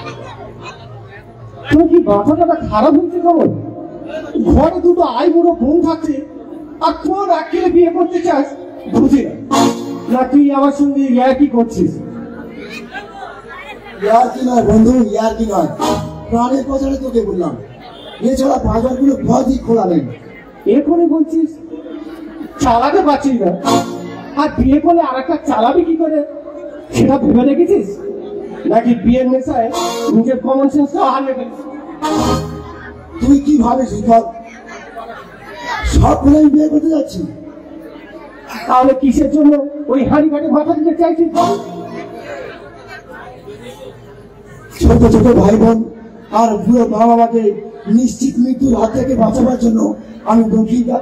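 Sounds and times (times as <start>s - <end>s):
man speaking through loudspeakers: 0.0s - 51.0s
quiet voices and chatter: 0.0s - 51.0s.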